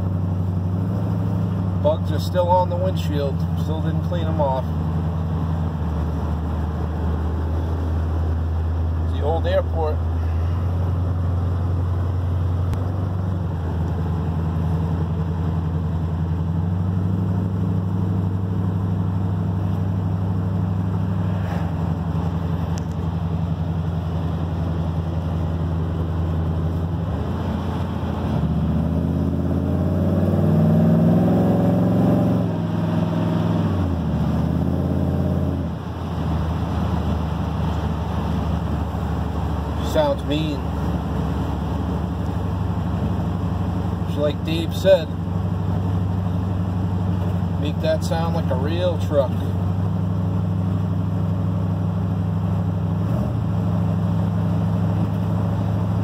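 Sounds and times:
pickup engine and exhaust: 0:00.0 - 0:56.0.

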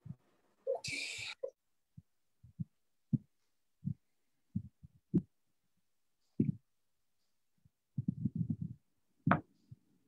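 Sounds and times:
soft low thumps and knocks: 0:02.0 - 0:05.4, 0:06.4 - 0:06.7, 0:08.0 - 0:09.8.

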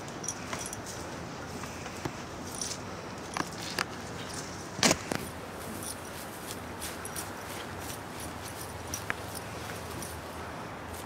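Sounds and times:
light clicks and jingles: 0:00.0 - 0:01.1, 0:02.4 - 0:04.6, 0:05.2 - 0:11.0.

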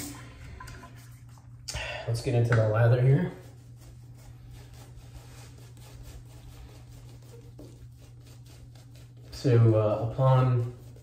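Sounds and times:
shaving brush swishing on soap: 0:02.6 - 0:11.0.

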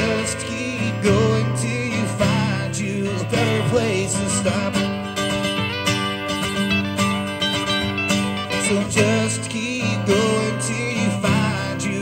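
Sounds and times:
person singing: 0:00.0 - 0:05.2, 0:08.3 - 0:12.0
acoustic guitars strumming: 0:00.0 - 0:12.0.

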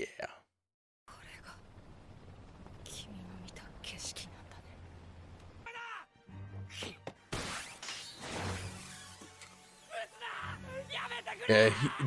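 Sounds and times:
low soundtrack hum: 0:01.1 - 0:05.7.

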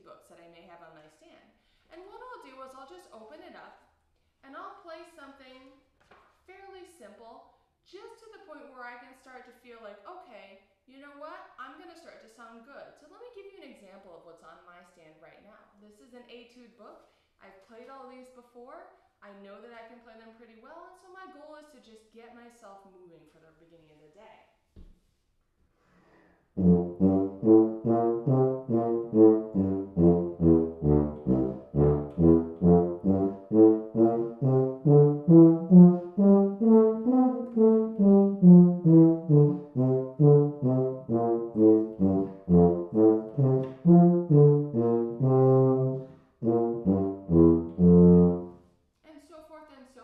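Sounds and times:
solo tuba playing: 0:26.6 - 0:48.6.

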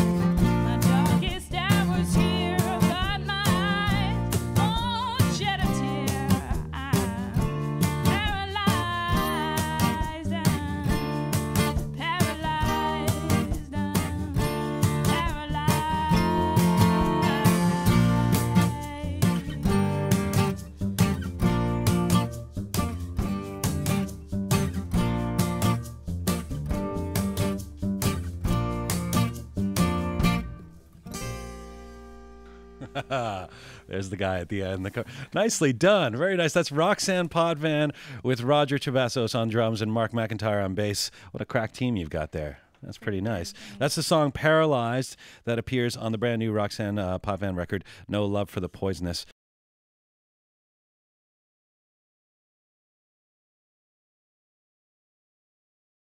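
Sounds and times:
drum kit beat: 0:00.0 - 0:30.5
strummed acoustic guitar: 0:00.0 - 0:36.0, 0:43.0 - 0:44.2
upright bass: 0:00.0 - 0:49.2
woman singing: 0:00.4 - 0:11.2, 0:11.9 - 0:19.9.

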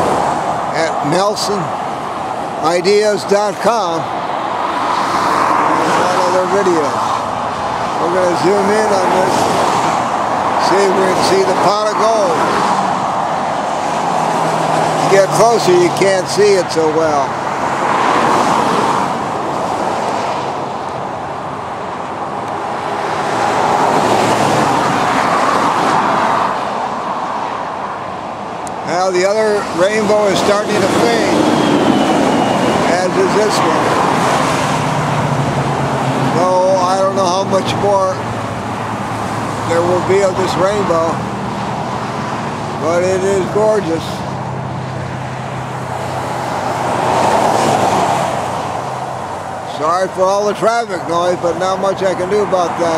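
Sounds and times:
vehicles passing on road: 0:00.0 - 0:52.9.

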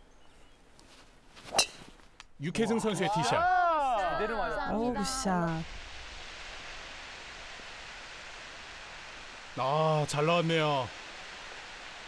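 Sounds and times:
outdoor ambient hiss: 0:00.0 - 0:12.0.

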